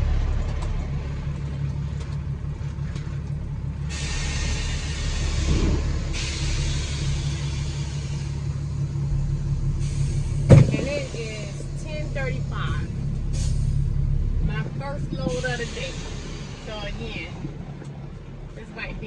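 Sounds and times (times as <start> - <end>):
diesel engine idling: 0.0 - 19.0
hiss: 3.9 - 8.7, 15.4 - 16.9.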